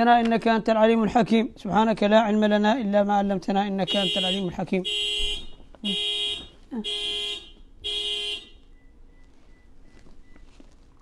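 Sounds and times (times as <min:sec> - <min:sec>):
electronic beeper alarm beeps: 0:07.9 - 0:10.6.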